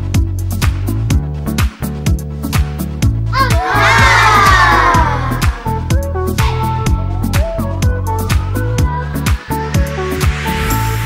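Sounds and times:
funky music with steady beat: 0.0 - 11.0
group of voices shouting: 3.3 - 5.9.

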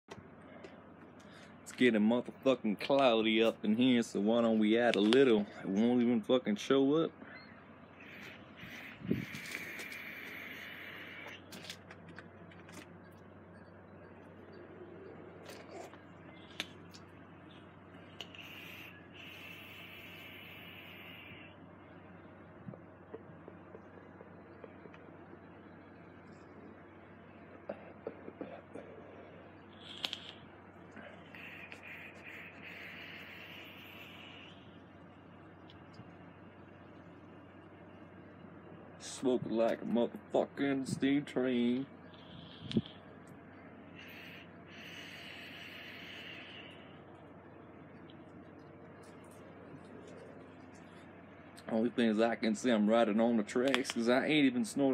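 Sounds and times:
vape hiss: 18.2 - 21.4, 29.8 - 30.4, 31.0 - 34.6, 44.0 - 46.8
small clicks: 29.8 - 30.4.

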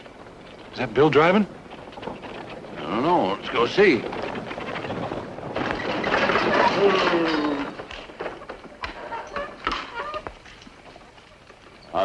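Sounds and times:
hoof clops and knocks: 0.0 - 12.0
rattle of hooves and wagon wheels: 0.0 - 12.0.

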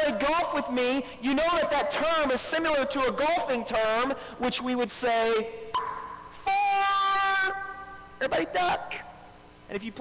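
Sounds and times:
man yelling: 6.4 - 9.0.

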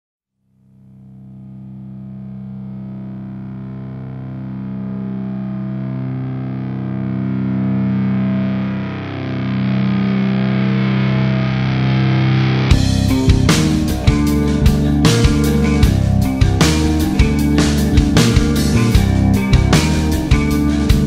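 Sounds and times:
distorted electric guitar chords: 0.6 - 21.0.

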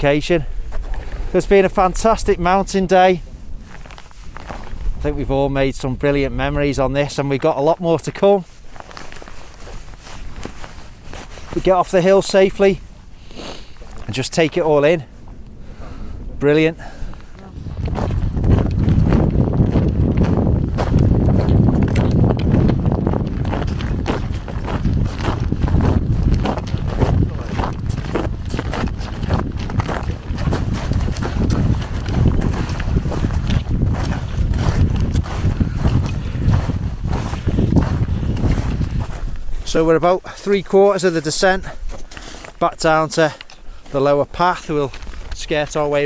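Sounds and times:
wind buffeting microphone: 0.0 - 40.2
footsteps crunching on snow: 0.6 - 5.3, 7.2 - 15.8, 16.8 - 46.0.

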